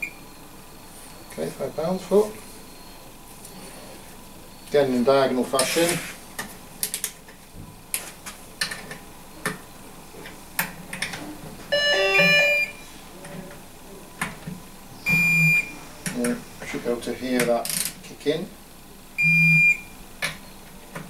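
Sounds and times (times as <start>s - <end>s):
electronic beeps: 11.7s - 12.9s, 15.0s - 15.8s, 19.2s - 19.9s.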